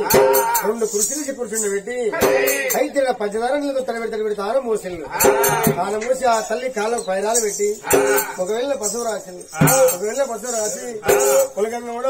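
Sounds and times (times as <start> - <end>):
man chanting in a wavering voice: 5.4 - 12.0
barrel drum strikes: 11.0 - 11.6.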